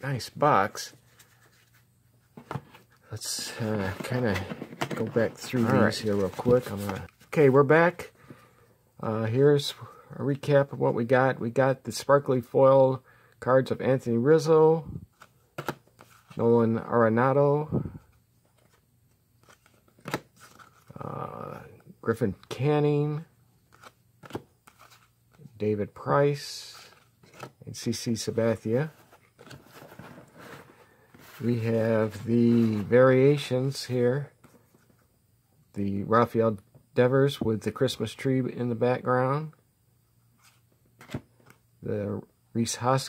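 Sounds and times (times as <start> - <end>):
cards shuffling: 0.9 - 7.6, 15.1 - 16.4, 18.4 - 21.4, 23.7 - 25.5, 26.6 - 33.0, 40.4 - 41.6.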